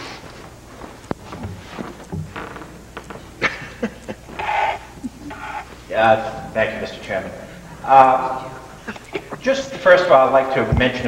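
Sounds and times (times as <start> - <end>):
papers rustling: 0.0 - 3.4.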